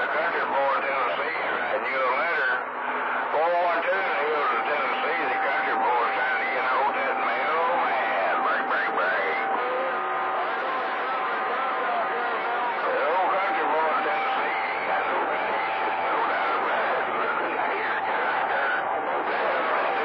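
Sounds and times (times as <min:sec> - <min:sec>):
garbled radio voices: 0:00.0 - 0:20.0
radio static: 0:00.0 - 0:20.0
steady radio whistle: 0:00.0 - 0:20.0.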